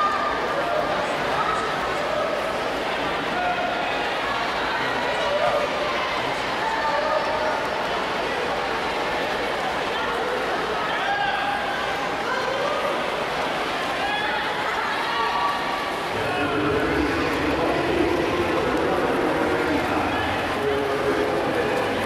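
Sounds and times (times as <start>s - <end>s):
crowd shouting and cheering: 13.8s - 22.0s.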